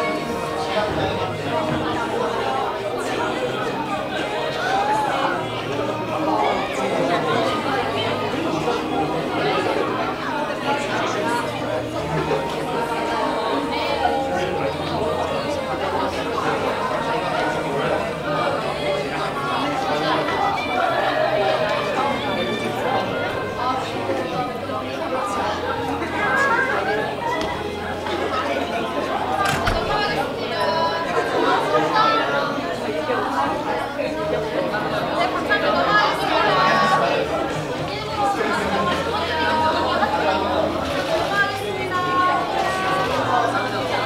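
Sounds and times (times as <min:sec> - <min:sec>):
crowd chatter: 0:00.0 - 0:44.0.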